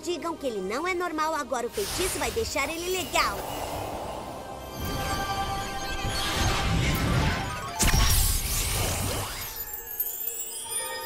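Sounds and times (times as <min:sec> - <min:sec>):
music: 0:00.0 - 0:11.0
shimmering spell effect: 0:01.7 - 0:11.0.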